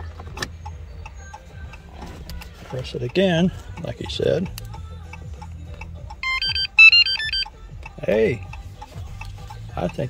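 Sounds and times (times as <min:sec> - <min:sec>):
electronic beep tune: 0:06.2 - 0:07.5.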